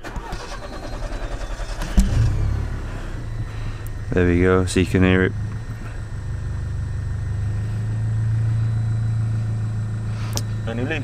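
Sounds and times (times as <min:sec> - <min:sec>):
car engine cranking and idling: 0:00.0 - 0:11.0.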